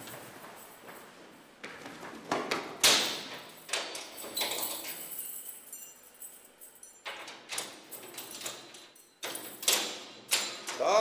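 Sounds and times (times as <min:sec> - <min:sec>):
man's voice: 0:10.8 - 0:11.0.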